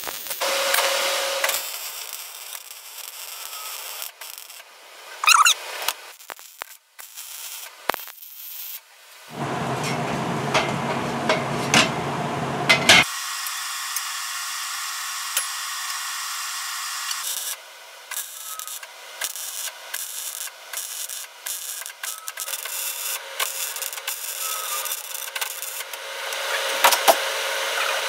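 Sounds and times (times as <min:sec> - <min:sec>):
welding arc hissing and crackling: 0:00.0 - 0:28.0.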